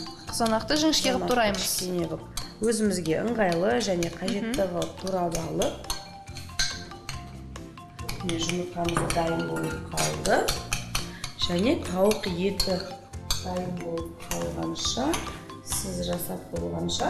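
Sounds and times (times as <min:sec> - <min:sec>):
fork clinking against a bowl: 0:00.0 - 0:07.3, 0:08.0 - 0:13.6
background music: 0:00.0 - 0:17.0.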